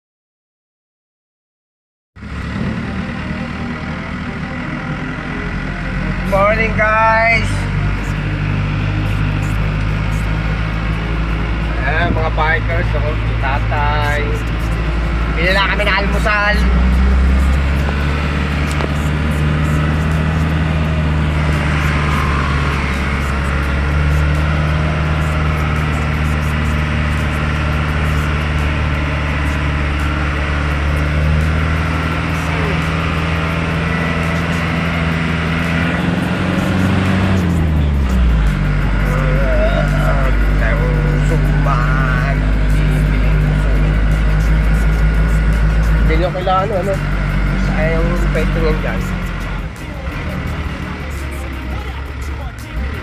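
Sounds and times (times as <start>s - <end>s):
vehicle engine running: 2.2s - 53.0s.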